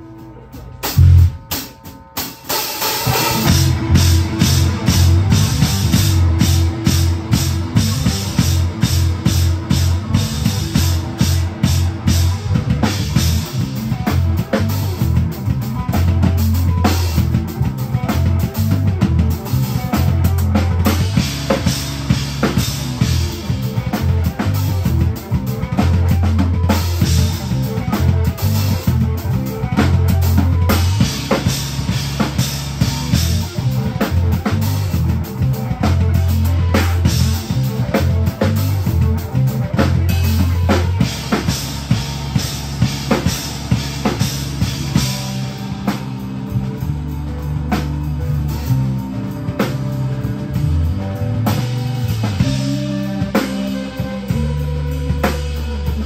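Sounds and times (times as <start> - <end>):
electric guitars: 0.0 - 56.0
drum kit hits: 0.7 - 56.0
bass guitar low notes: 0.8 - 1.5, 3.1 - 56.0.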